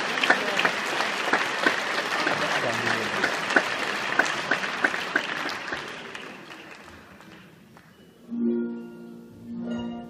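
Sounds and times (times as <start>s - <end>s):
audience applauding: 0.0s - 8.0s
single sharp claps: 3.2s - 6.3s.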